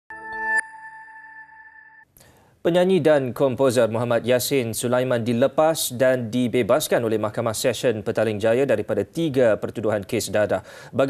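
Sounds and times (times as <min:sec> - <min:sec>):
high chime-like tone ringing: 0:00.1 - 0:02.0
synthesized chord: 0:00.1 - 0:02.0.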